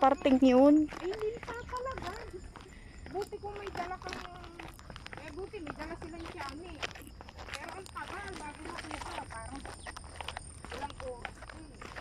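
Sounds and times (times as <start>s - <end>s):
footsteps on stone steps: 0.0s - 12.0s.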